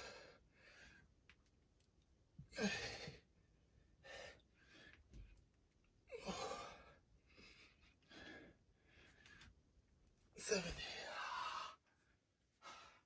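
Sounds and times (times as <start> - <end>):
man breathing quietly: 4.0 - 5.5, 6.2 - 9.6, 10.8 - 13.0.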